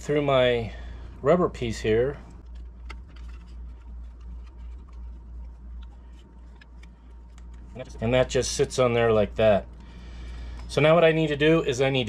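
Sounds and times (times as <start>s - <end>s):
steady low hum: 0.0s - 12.0s
cable clicks and rubbing: 2.4s - 8.7s.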